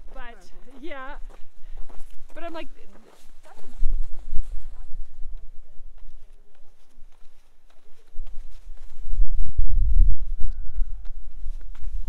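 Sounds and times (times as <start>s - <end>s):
footsteps crunching on snow: 0.0s - 9.5s, 10.2s - 12.0s
wind rumble on microphone: 3.3s - 12.0s.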